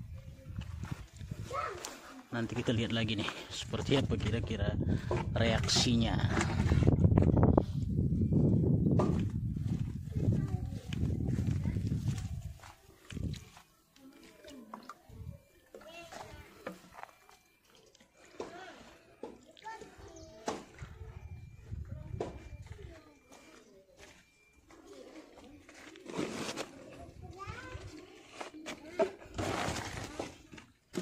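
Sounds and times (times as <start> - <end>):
footsteps on stony soil: 0.1 - 7.4, 8.4 - 18.9.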